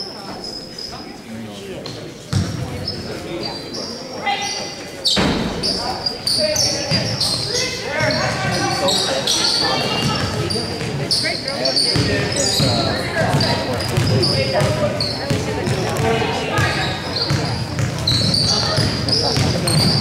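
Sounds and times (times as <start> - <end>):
voices shouting in gymnasium: 1.9 - 20.0
sneakers squeaking on hardwood: 2.3 - 20.0
basketball dribbling: 11.9 - 20.0.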